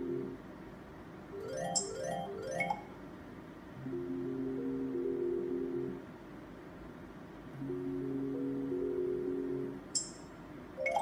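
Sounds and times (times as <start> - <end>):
slot machine melody: 1.4 - 2.9, 10.8 - 11.0.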